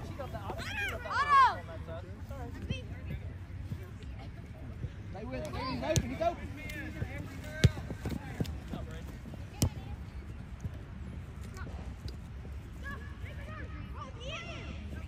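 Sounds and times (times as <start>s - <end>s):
soccer ball kicked thuds: 5.5s - 10.8s.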